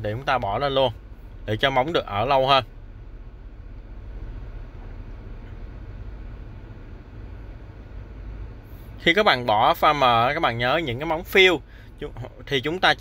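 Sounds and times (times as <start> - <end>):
faint hiss: 0.0 - 13.0
low background hum: 0.0 - 13.0.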